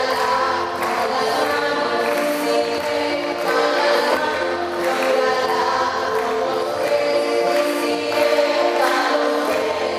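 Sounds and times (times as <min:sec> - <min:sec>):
congregation singing a hymn: 0:00.0 - 0:09.9.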